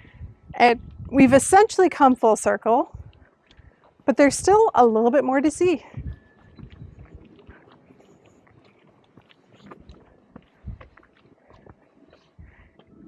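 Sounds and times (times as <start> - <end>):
footsteps on gritty pavement: 3.0 - 13.0.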